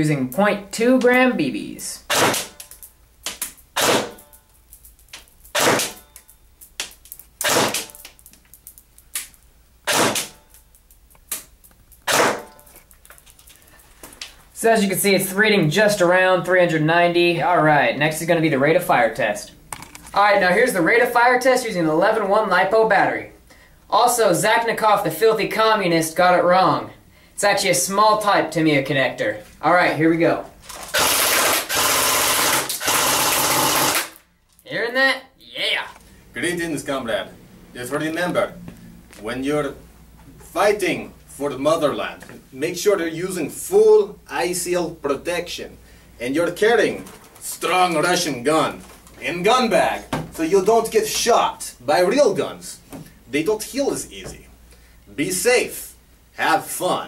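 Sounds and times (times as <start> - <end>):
airsoft gun shots: 2.1 - 2.6, 3.8 - 4.2, 5.5 - 6.0, 7.4 - 8.0, 9.8 - 10.4, 12.0 - 12.5, 31.0 - 34.2.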